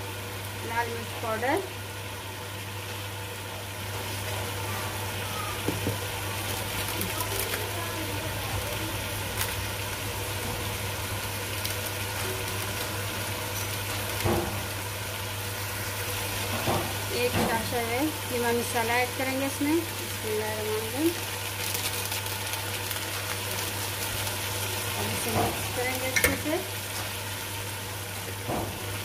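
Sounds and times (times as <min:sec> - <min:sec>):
potatoes sizzling in hot oil: 0:00.0 - 0:29.0.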